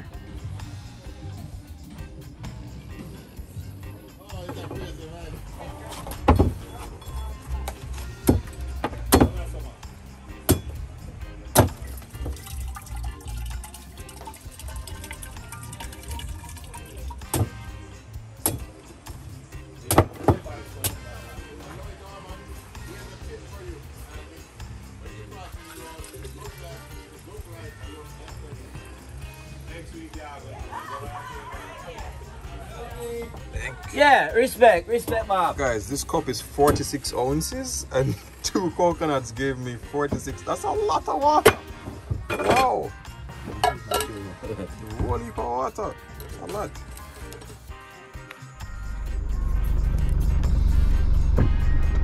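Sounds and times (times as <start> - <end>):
background music: 0.0 - 52.0
machete chopping coconut: 8.2 - 9.4, 10.5 - 10.8, 11.6 - 11.8, 19.9 - 21.0.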